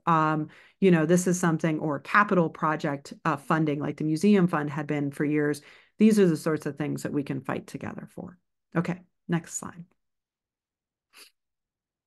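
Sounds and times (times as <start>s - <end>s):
person breathing: 0.5s - 0.8s, 5.6s - 6.0s.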